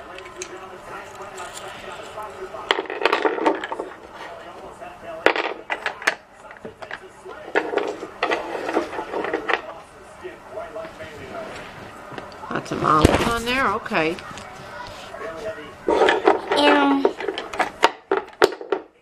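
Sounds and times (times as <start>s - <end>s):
wooden toy pieces clacking: 2.7s - 4.0s, 5.3s - 9.7s, 15.9s - 18.9s
child murmuring: 16.6s - 17.2s.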